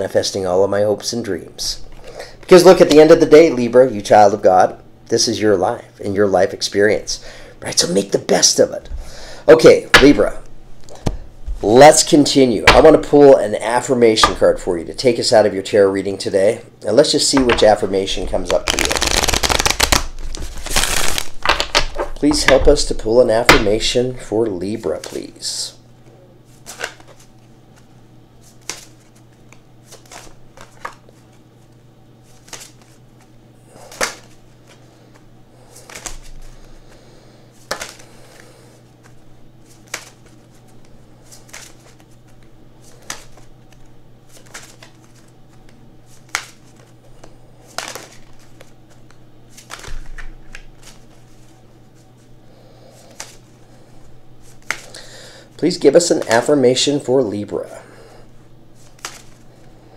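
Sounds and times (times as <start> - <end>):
cards being shuffled: 17.4 - 23.8, 26.5 - 27.5, 28.4 - 36.7, 37.6 - 52.1, 53.0 - 53.5, 54.4 - 55.0, 58.8 - 59.4.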